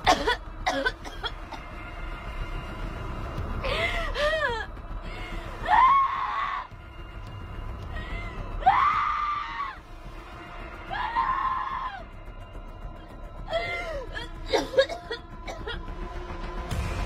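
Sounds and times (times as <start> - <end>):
woman wailing and sobbing: 3.6 - 6.5.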